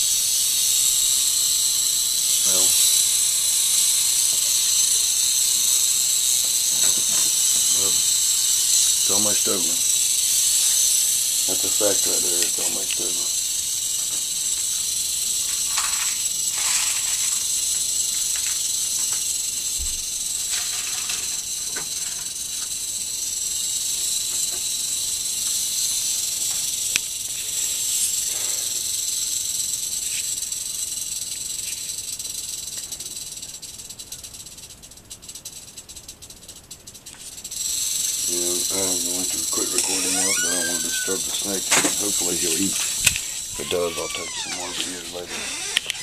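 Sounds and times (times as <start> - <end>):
rattlesnake rattling: 0.0 - 46.0.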